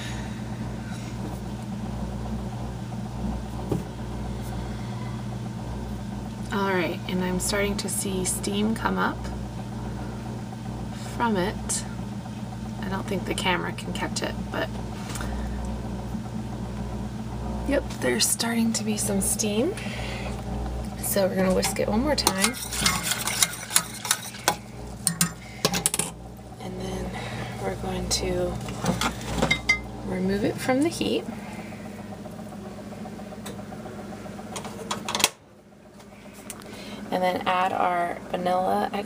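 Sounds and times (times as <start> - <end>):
low mechanical hum: 0.0 - 39.0
bottles and saucepan clinking: 29.4 - 29.9.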